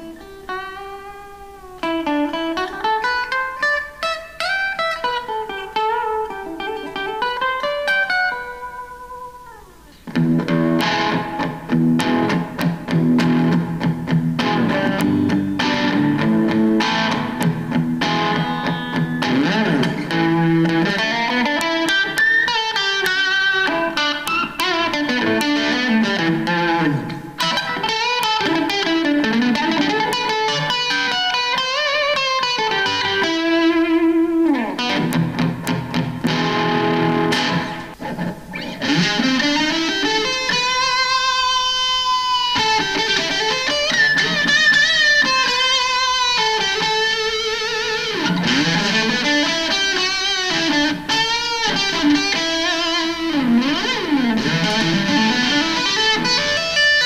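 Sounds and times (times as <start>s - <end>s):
electric guitar through an amp: 0.0s - 57.0s.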